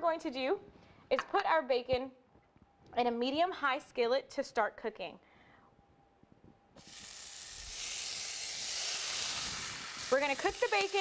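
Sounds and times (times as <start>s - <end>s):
bacon sizzling in a skillet: 6.8s - 11.0s.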